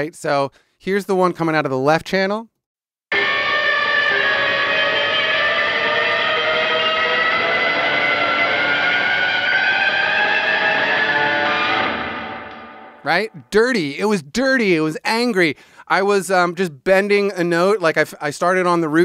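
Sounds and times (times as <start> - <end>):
distorted electric guitar: 3.1 - 13.3.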